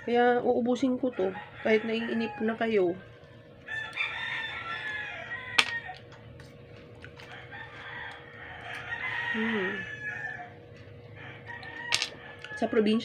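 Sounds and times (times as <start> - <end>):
rooster crowing: 1.0 - 6.1, 7.1 - 13.0.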